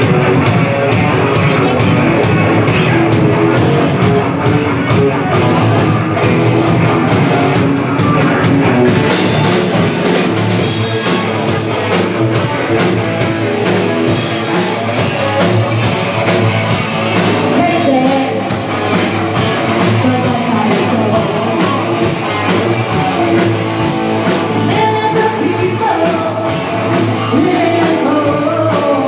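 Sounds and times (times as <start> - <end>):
drum kit beat: 0.0 - 29.0
electric guitar: 0.0 - 29.0.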